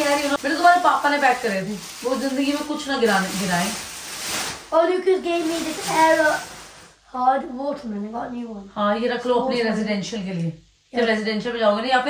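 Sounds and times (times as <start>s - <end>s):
plastic wrapping crinkling: 0.0s - 6.9s.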